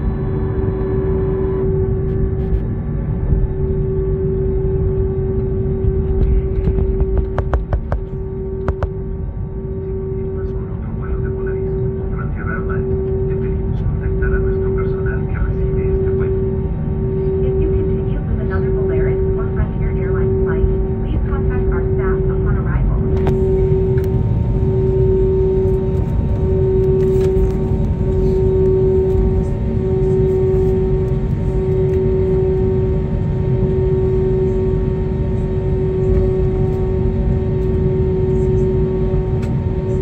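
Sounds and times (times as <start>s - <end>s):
aircraft engines idling rumble: 0.0s - 40.0s
pulsing hum: 0.0s - 40.0s.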